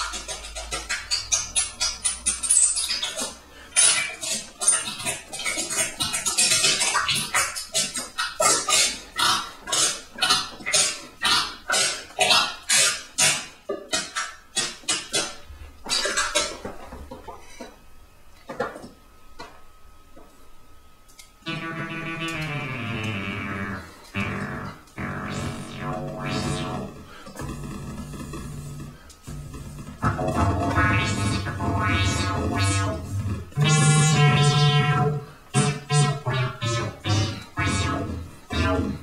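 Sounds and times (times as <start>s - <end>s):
sharp electronic percussion hits: 25.0s - 39.0s.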